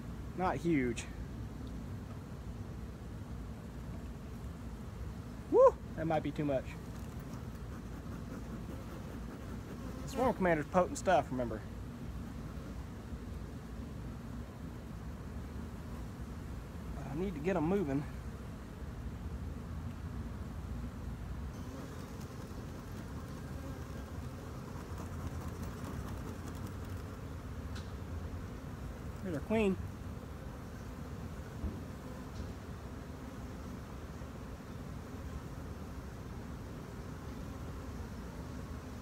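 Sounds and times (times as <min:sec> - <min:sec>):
bees buzzing: 0:06.8 - 0:10.5, 0:21.5 - 0:39.0.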